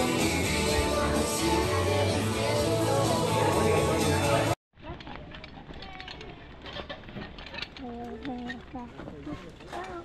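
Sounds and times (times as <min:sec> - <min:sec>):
indistinct voices: 0:00.0 - 0:04.6.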